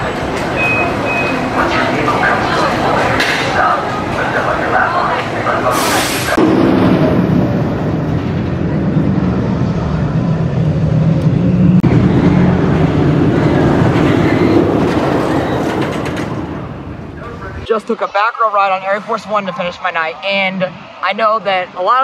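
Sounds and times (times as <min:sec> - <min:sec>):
roller coaster clattering rumble: 0:00.0 - 0:17.7.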